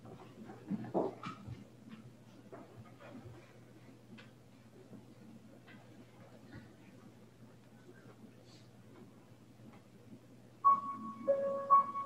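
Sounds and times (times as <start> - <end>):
faint low hum: 0.0 - 12.0
piano playing: 10.6 - 12.0.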